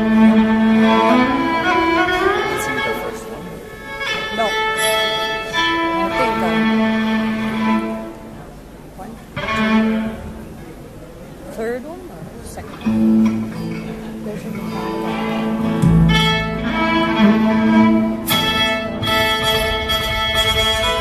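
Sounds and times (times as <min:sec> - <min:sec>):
solo fiddle long held notes: 0:00.0 - 0:10.9, 0:12.8 - 0:21.0.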